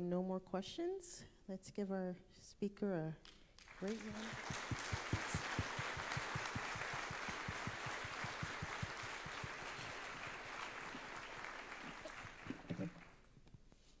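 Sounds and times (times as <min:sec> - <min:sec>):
audience applauding: 0:03.6 - 0:13.2.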